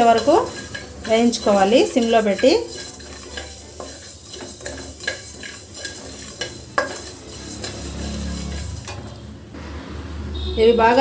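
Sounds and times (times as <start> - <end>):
spatula scraping metal pan: 0.0 - 9.3
light sizzle: 0.0 - 9.5.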